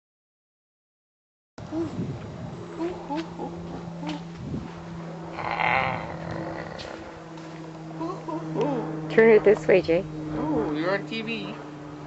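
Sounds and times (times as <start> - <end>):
low electrical hum: 1.6 - 12.0
baby cooing and squealing: 5.4 - 7.0.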